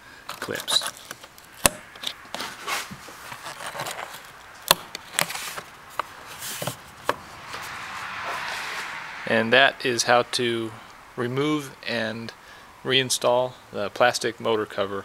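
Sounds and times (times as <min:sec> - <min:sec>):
plastic cover scraping: 0:00.3 - 0:07.8.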